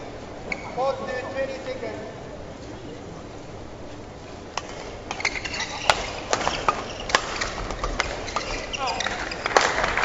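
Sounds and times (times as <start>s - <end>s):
indoor arena hum: 0.0s - 10.0s
rackets striking shuttlecock: 4.6s - 10.0s.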